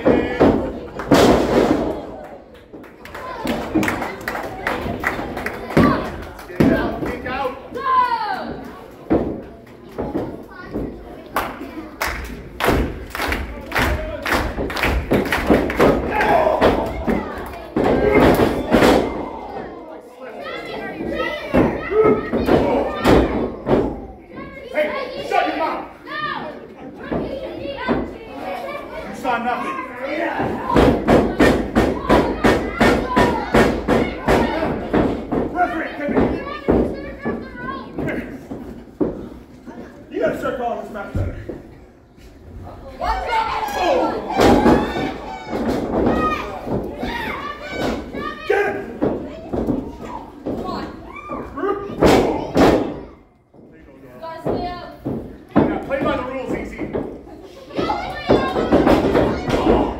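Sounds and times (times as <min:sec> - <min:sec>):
spectators shouting: 0:15.9 - 0:19.6.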